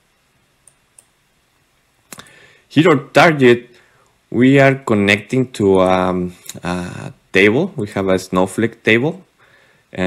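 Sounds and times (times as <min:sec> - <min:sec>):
computer mouse clicks: 0:00.6 - 0:01.2.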